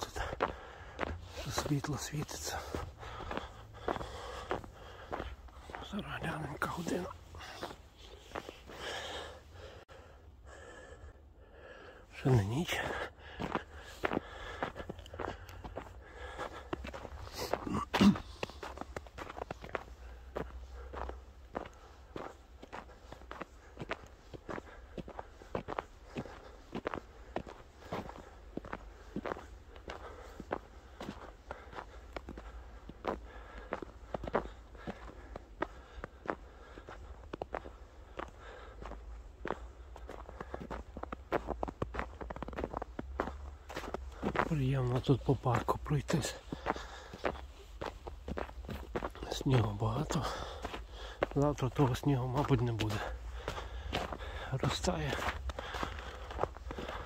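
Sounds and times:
footsteps on snow: 0.0 - 11.0, 11.6 - 57.0.

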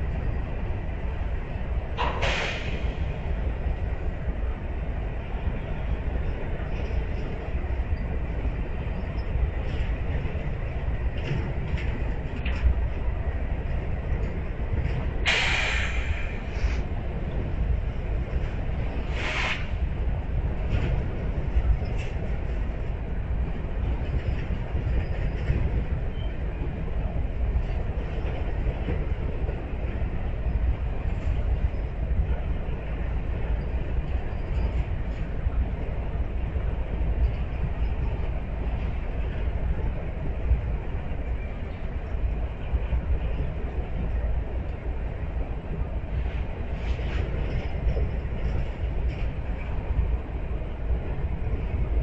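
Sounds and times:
train wheels rumbling on rail: 0.0 - 52.0.

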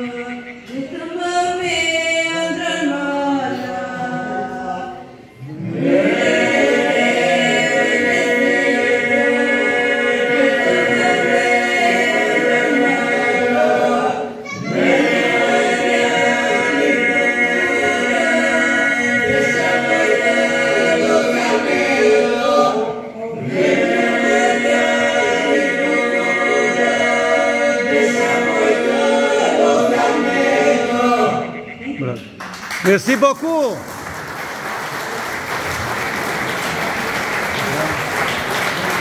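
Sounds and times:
group singing a cappella: 0.0 - 32.4.

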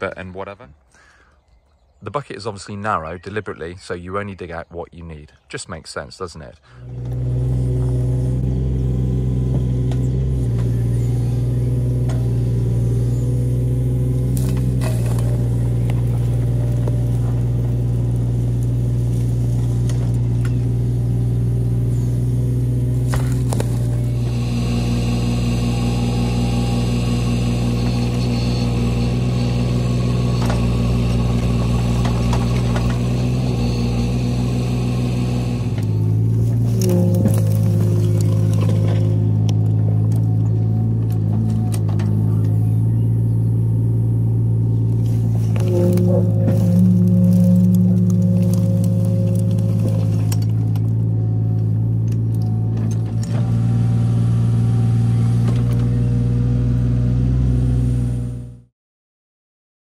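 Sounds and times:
excavator diesel engine running: 6.4 - 58.7
high steady whine: 9.5 - 56.2.

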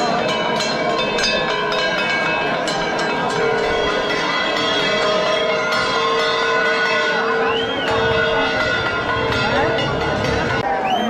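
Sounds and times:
crowd: 0.0 - 11.0
metal bells ringing: 0.0 - 11.0.

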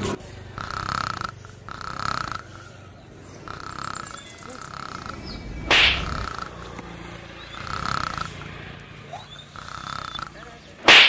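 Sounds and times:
man snoring: 0.5 - 10.6.

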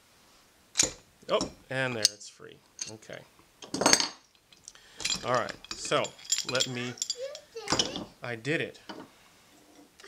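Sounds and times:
metal tool clinking: 0.8 - 2.2, 2.8 - 8.1.

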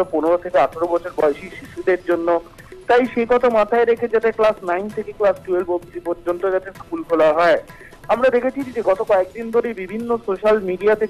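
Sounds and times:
person speaking rapidly: 0.0 - 11.0.

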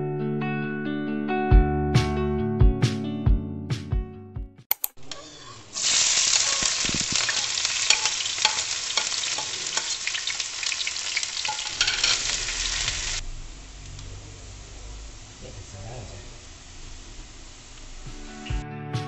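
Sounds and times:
sharp clicks: 4.7 - 5.2
onion sizzling in hot oil: 5.2 - 18.4.

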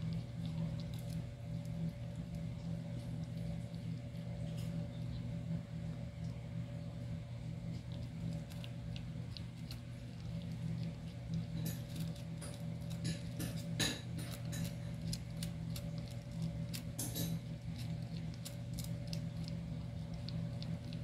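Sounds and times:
kitten chewing and crunching: 0.0 - 21.0
low hum: 0.0 - 21.0.

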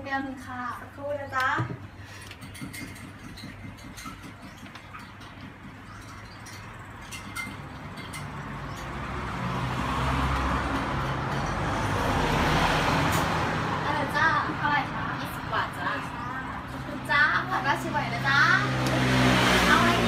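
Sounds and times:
vehicle passing by: 6.4 - 20.0.

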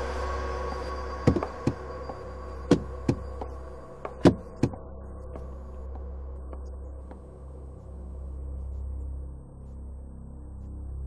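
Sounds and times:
low steady hum: 0.0 - 11.0
dull knocks: 1.3 - 1.8.

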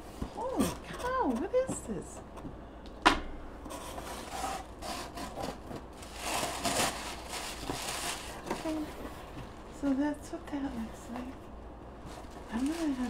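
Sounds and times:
tissue paper rustling: 3.7 - 9.7, 12.0 - 13.0.

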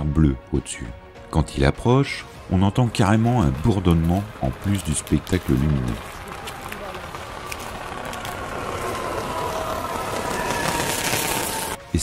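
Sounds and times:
electric train humming: 2.5 - 12.0
falling whine: 4.0 - 11.8
faint electrical crackling: 4.5 - 11.8.

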